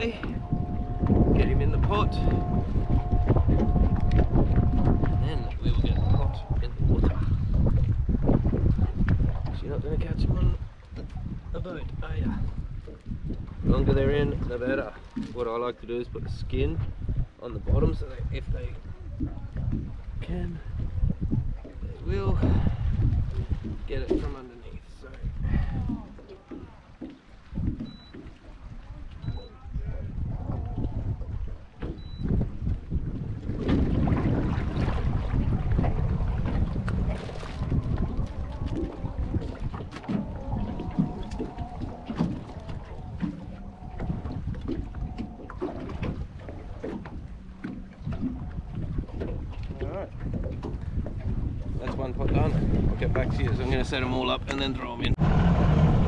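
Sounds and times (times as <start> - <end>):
wind rumbling on microphone: 0.0 - 56.0
pots and rope knocking in dinghy: 25.1 - 29.6, 30.5 - 53.8.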